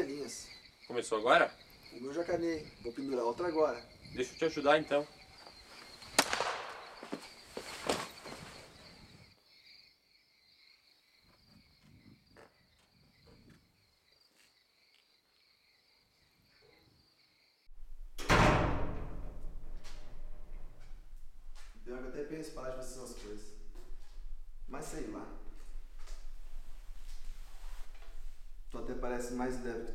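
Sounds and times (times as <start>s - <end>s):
high insect drone: 0.0s - 17.7s, 20.6s - 29.9s
low hum: 17.7s - 29.9s.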